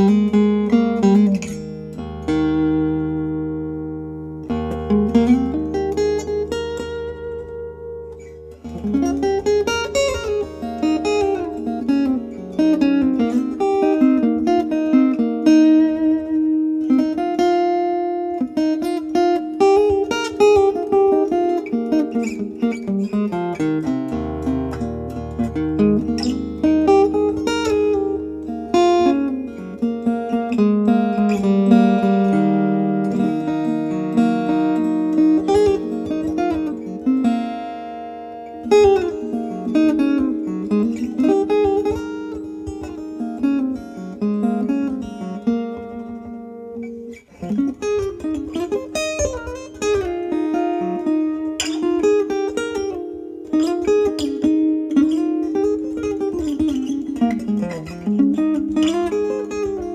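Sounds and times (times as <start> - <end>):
acoustic guitar melody: 0.0 - 59.9.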